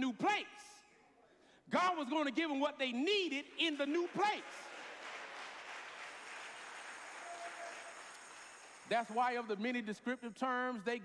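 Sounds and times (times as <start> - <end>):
congregation applauding softly: 3.8 - 9.2.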